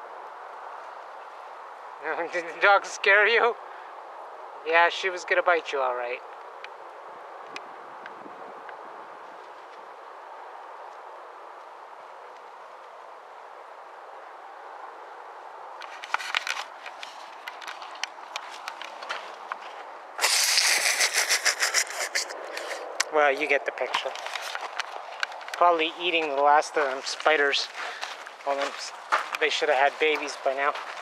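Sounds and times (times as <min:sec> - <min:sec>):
steady outdoor hiss: 0:00.0 - 0:31.0
dry twigs and grass rustling: 0:08.7 - 0:13.0, 0:15.8 - 0:20.0, 0:20.9 - 0:31.0.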